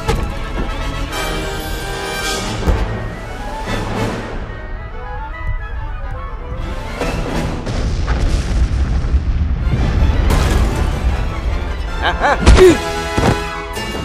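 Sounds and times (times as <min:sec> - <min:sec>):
dramatic orchestral music: 0:00.0 - 0:14.0.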